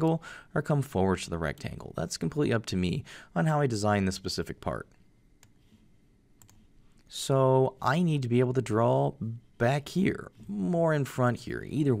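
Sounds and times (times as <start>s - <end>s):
computer mouse clicks: 4.9s - 5.8s, 6.4s - 7.1s.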